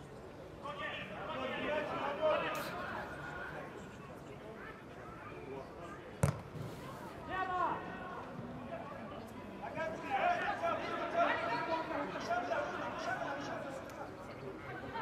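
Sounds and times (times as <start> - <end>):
football kick thud: 6.2 - 6.8.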